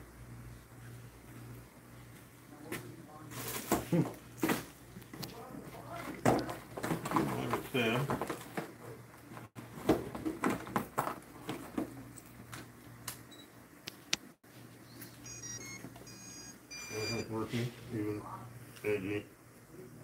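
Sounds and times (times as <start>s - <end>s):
high electronic beeps: 14.9s - 17.3s.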